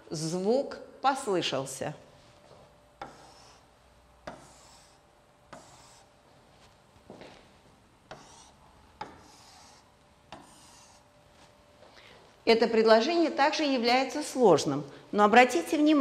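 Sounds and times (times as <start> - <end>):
stylus tapping and scraping screen: 2.6 - 6.8, 8.0 - 11.6.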